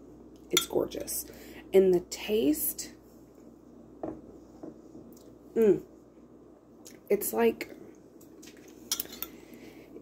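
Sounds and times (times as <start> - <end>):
metal spoon clinking ceramic bowl: 8.9 - 9.4.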